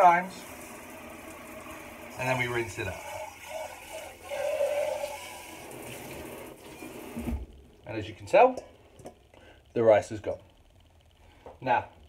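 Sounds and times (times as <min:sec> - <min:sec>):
water running and splashing: 0:00.0 - 0:07.6.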